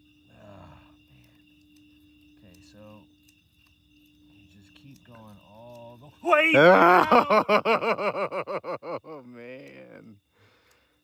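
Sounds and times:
night insects chirring: 0:00.0 - 0:11.0.

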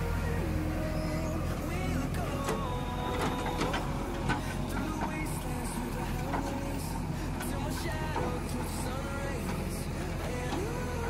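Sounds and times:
diesel engine under load: 0:00.0 - 0:11.0
digger arm digging soil: 0:00.4 - 0:11.0.

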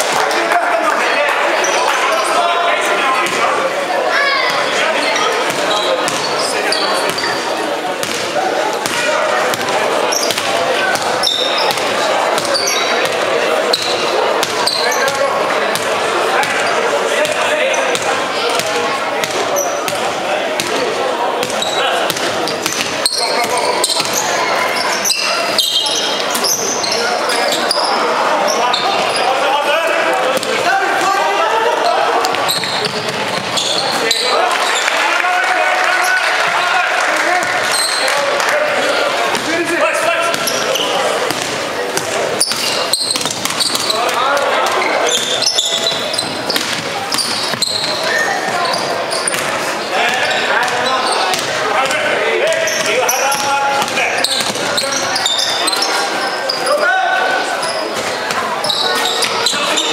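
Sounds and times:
players and spectators calling out: 0:00.0 - 0:59.9.

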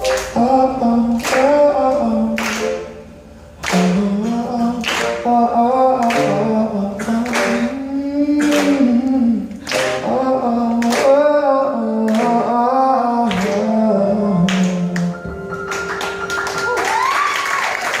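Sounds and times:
hand claps: 0:00.0 - 0:00.4, 0:01.2 - 0:02.8, 0:03.6 - 0:05.2, 0:07.0 - 0:07.6, 0:08.4 - 0:08.9, 0:09.6 - 0:10.0, 0:10.8 - 0:11.2, 0:12.1 - 0:12.4, 0:13.3 - 0:13.7
man singing lead: 0:00.0 - 0:15.5
upright piano: 0:00.0 - 0:18.0.

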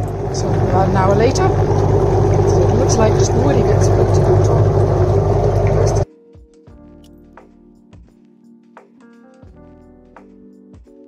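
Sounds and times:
air bubbling through liquid: 0:00.0 - 0:06.0
quiet plucked background music: 0:00.0 - 0:11.0.

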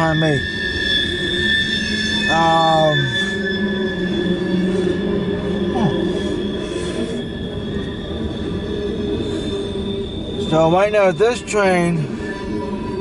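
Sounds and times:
high-pitched wheel squeal: 0:00.0 - 0:13.0.

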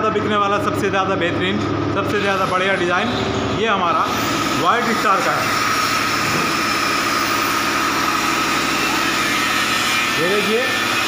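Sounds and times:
power tool motor whining: 0:04.0 - 0:11.0.

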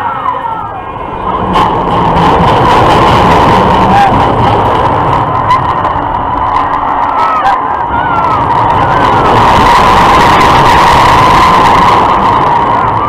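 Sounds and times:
riders screaming: 0:00.0 - 0:01.5, 0:03.0 - 0:13.0
rush of wind and running noise: 0:00.0 - 0:13.0
steady whine: 0:00.0 - 0:13.0.

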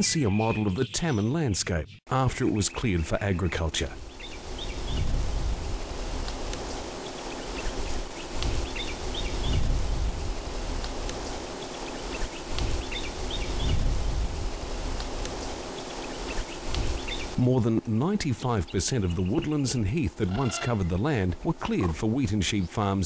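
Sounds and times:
steady hiss: 0:03.8 - 0:23.0
bird chirps: 0:15.8 - 0:17.4.

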